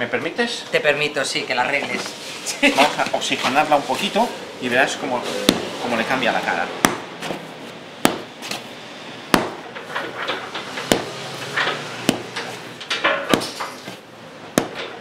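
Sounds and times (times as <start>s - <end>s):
dough slapping on wooden worktop: 12.1s - 12.4s.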